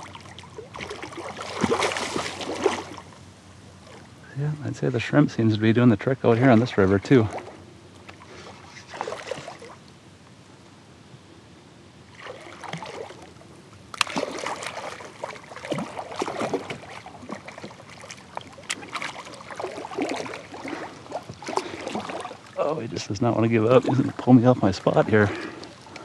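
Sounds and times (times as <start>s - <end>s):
fish splashing in water: 0.0s - 4.1s, 7.3s - 9.9s, 12.1s - 26.0s.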